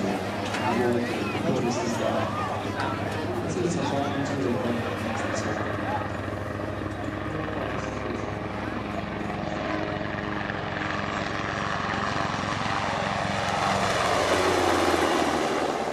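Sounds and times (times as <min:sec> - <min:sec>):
helicopter rotor chop: 0:00.0 - 0:15.9.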